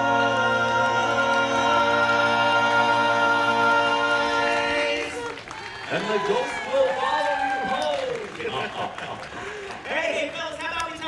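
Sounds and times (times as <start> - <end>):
a cappella chord singing: 0.0 - 5.4
people cheering: 4.4 - 11.0.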